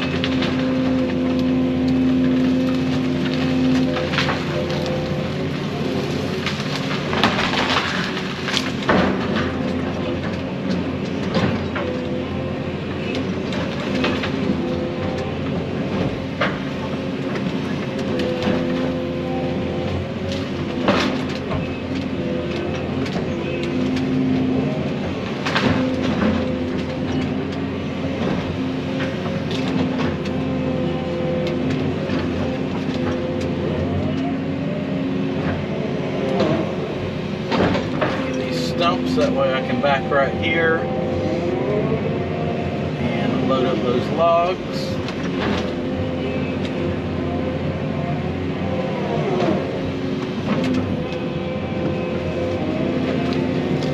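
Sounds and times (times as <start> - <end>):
brush and limbs cracking: 0.0 - 53.9
excavator engine and hydraulics: 0.0 - 53.9.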